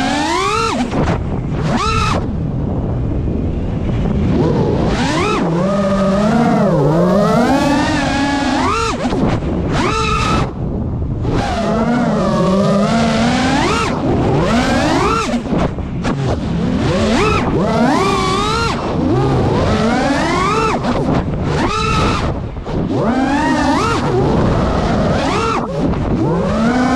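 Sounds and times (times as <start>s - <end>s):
quadcopter motors whining: 0.0s - 26.9s.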